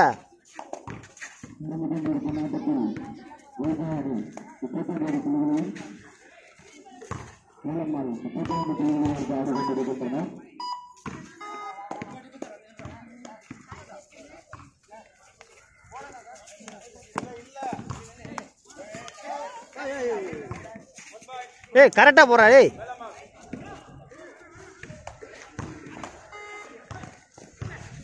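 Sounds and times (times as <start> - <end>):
players and spectators shouting: 1.6 - 6.0, 7.6 - 10.4, 18.7 - 20.6.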